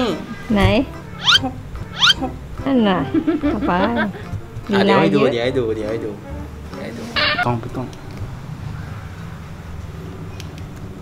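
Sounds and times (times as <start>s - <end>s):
high rising squeaks: 1.2s - 2.4s, 7.0s - 7.7s.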